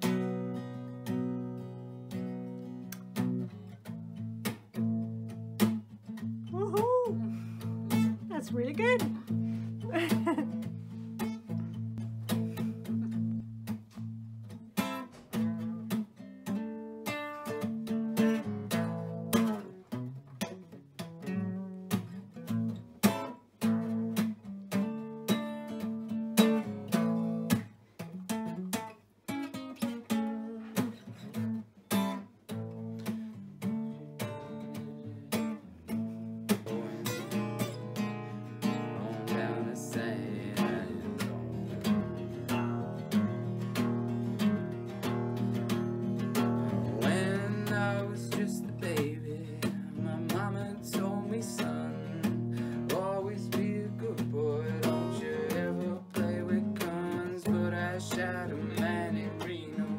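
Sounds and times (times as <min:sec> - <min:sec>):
acoustic guitar strumming and picking: 0:00.0 - 0:59.9.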